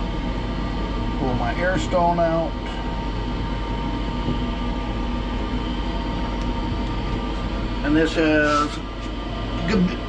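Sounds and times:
mechanical hum and rumble: 0.0 - 10.0.

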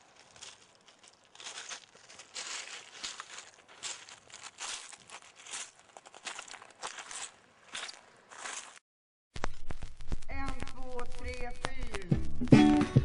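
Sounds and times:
crackling and rustling noise: 0.0 - 8.8, 9.4 - 12.8
music from a record: 10.4 - 13.0.

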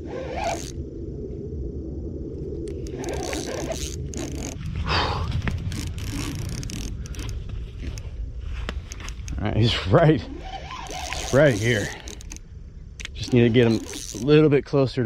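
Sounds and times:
fishing reel zipping scrapes: 0.0 - 0.8, 2.7 - 4.7, 5.5 - 8.0, 10.2 - 12.4, 13.0 - 14.4
sharp reel clicks: 0.0 - 0.8, 2.7 - 4.6, 5.6 - 8.0, 10.4 - 12.4, 13.0 - 14.4
low rumble of handling noise: 0.0 - 15.0.

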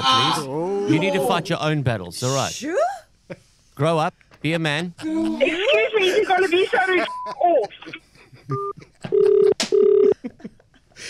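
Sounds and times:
telephone ringback tone: 9.1 - 10.2.

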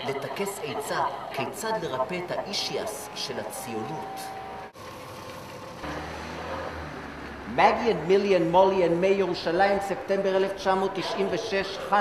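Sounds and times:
outdoor street background noise: 0.0 - 12.0.

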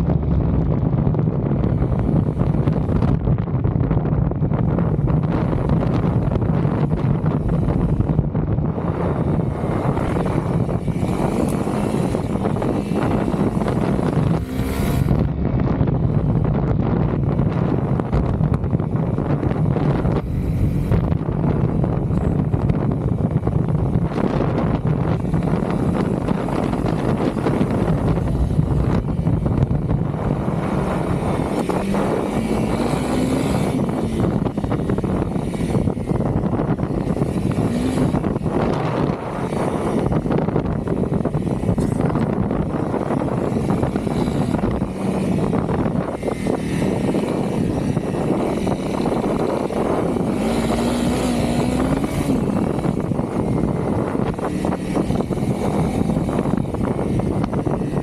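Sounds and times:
motorcycle engine running: 0.0 - 58.0
wind buffeting microphone: 0.0 - 58.0.

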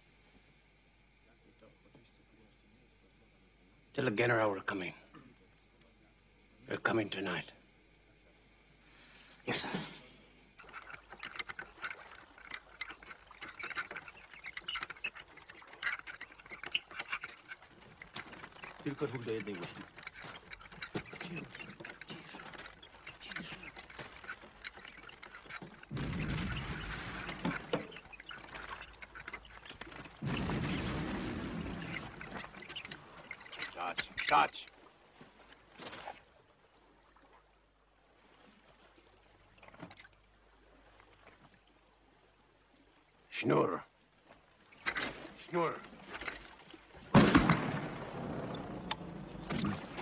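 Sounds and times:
explosions and gunfire rumbling: 30.2 - 32.1, 47.1 - 48.9.

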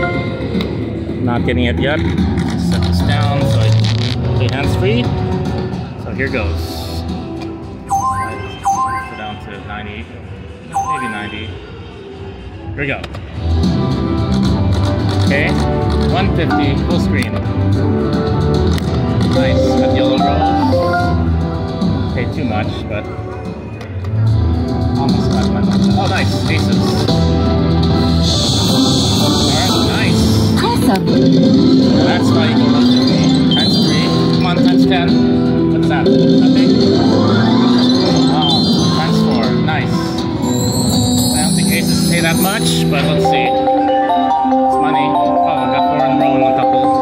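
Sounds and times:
slot machine music: 7.6 - 11.8, 14.5 - 22.6, 24.6 - 47.0
rising run of high tones: 7.9 - 9.6, 10.7 - 11.8, 19.4 - 21.3, 40.3 - 46.0.

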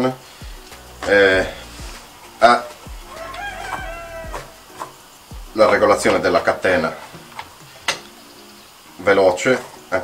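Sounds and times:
rooster crowing: 2.0 - 5.8.

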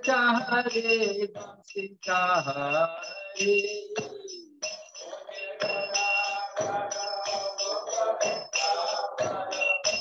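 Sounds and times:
devotional chant singing: 0.0 - 10.0
small hand cymbals ringing: 0.0 - 10.0.

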